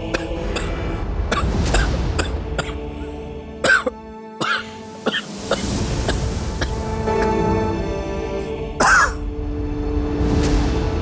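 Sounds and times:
background music sustained notes: 0.0 - 11.0
man coughing: 3.6 - 5.3, 8.8 - 9.2.

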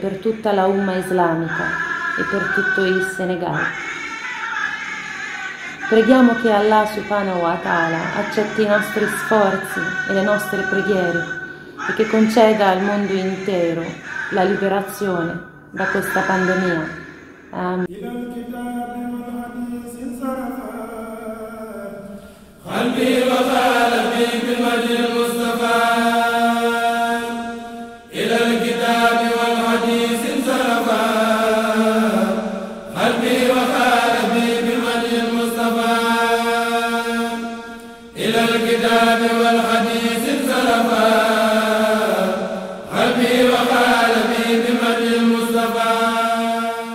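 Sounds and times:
voices chanting devotional poems: 0.0 - 46.9.

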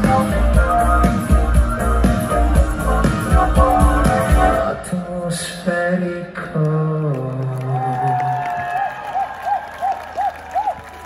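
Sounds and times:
electronic rock band: 0.0 - 6.0.

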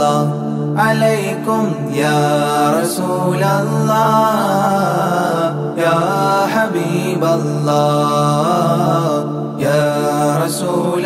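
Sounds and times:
person chanting devotional song: 0.0 - 11.0.

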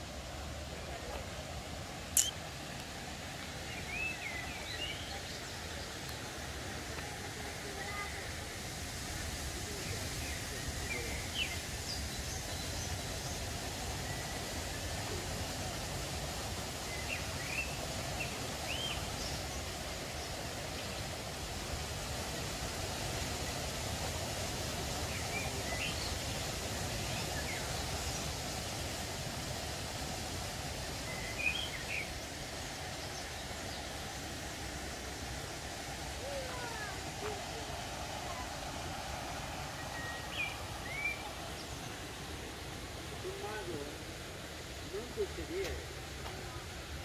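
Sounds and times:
outdoor ambience hiss: 0.0 - 47.0
small birds chirping: 2.1 - 6.4, 30.7 - 43.9.

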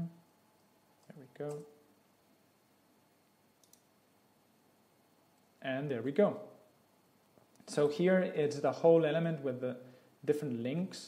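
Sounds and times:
faint computer mouse clicks: 3.6 - 3.9.

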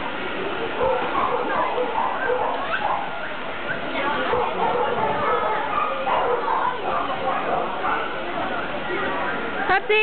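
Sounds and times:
dog barking and whining: 0.8 - 3.2
people talking: 3.7 - 10.0.

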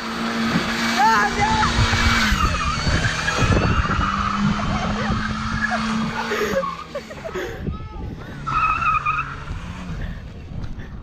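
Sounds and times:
car engine running: 0.0 - 11.0
tyres squealing: 0.9 - 7.4, 8.4 - 10.0.

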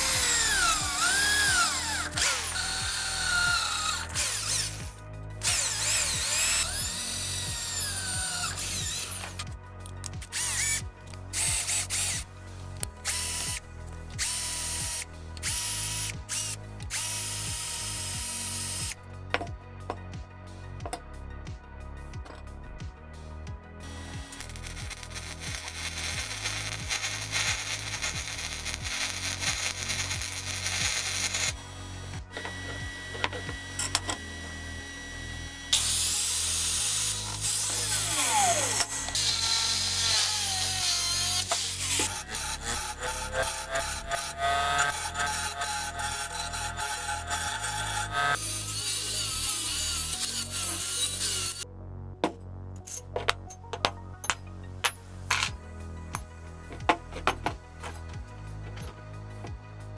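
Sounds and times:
angle grinder cutting steel: 0.0 - 9.5, 10.2 - 13.6, 14.2 - 19.0, 23.9 - 51.6.

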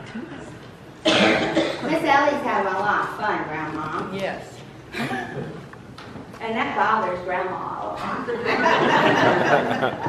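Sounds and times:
person coughing: 1.0 - 2.0, 4.9 - 5.6.

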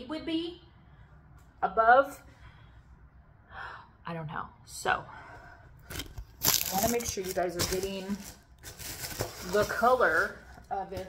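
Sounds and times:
woman talking: 0.0 - 0.7, 1.6 - 2.3, 6.6 - 8.4, 9.4 - 11.0
woman breathing in and out: 2.3 - 4.0.

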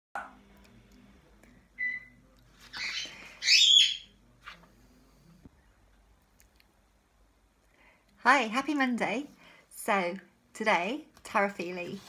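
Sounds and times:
bird-like chirps and whistles: 2.8 - 4.1.

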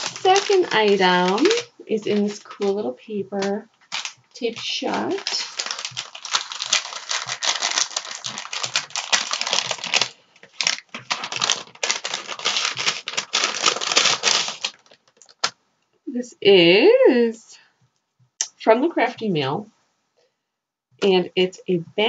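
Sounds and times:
paper wrapping rustling: 0.0 - 15.6.

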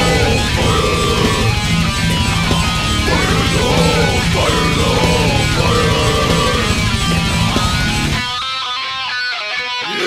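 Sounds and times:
bass guitar: 0.0 - 9.0
distorted electric guitar riff: 0.0 - 10.0
drums: 0.0 - 10.0.

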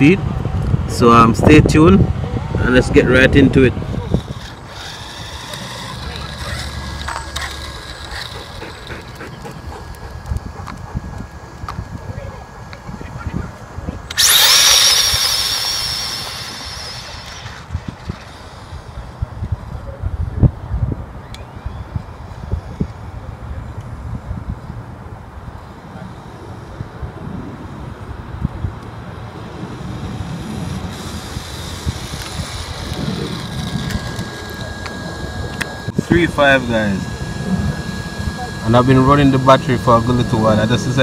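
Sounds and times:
wind: 0.0 - 41.0
electric motor whining: 2.7 - 20.3, 29.2 - 41.0.

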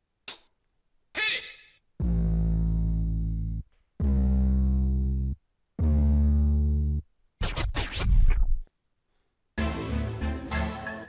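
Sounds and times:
bass-heavy musical phrases: 2.0 - 8.6, 9.6 - 11.0.

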